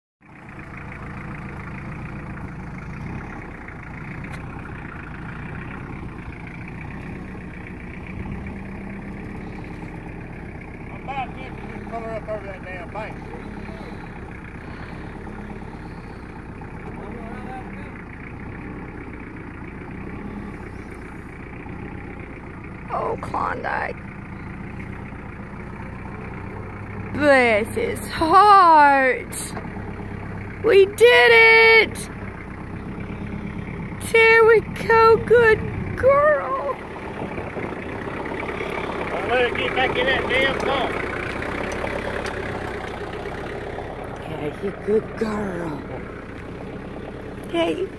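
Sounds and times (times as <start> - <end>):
tractor engine running: 0.2 - 47.9
woman calling out: 22.9 - 24.0, 27.2 - 29.6, 30.6 - 32.2, 34.0 - 36.9, 44.2 - 46.1, 47.4 - 47.9.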